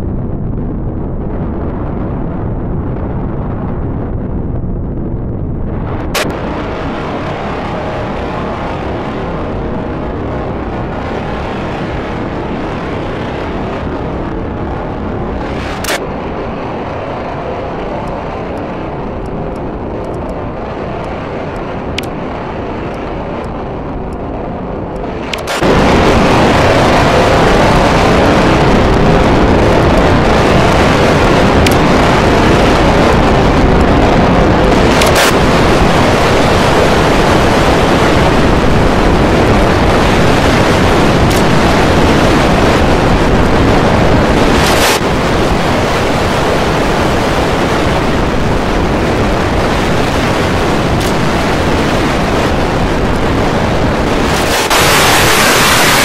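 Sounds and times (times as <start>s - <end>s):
loud dense roar of noise: 0.0s - 56.0s
sharp clicks: 15.6s - 16.0s, 21.0s - 22.2s, 24.9s - 25.7s, 31.6s - 31.9s, 34.9s - 35.4s, 41.2s - 41.6s, 50.9s - 51.6s.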